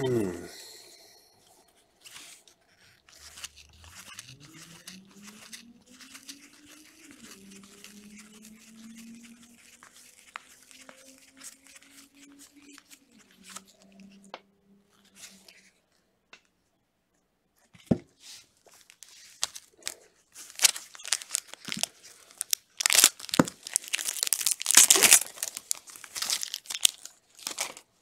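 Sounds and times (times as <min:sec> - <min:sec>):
cards flicking and rustling: 0:02.0 - 0:14.0, 0:17.8 - 0:27.9.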